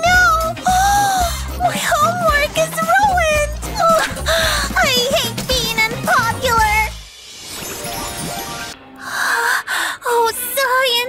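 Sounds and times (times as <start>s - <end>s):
woman gasping: 3.9s - 4.8s.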